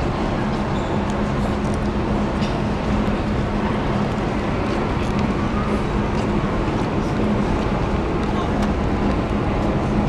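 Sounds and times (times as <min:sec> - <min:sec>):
constant low hum: 0:00.0 - 0:10.0
crowd hubbub: 0:00.0 - 0:10.0
traffic: 0:00.0 - 0:10.0.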